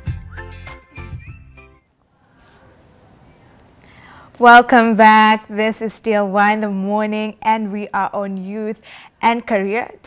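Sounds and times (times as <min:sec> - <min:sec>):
bright television jingle: 0:00.0 - 0:01.9.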